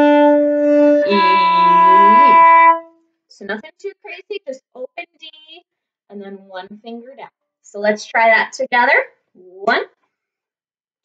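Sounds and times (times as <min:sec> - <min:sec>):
violin bowing long notes: 0:00.0 - 0:02.9.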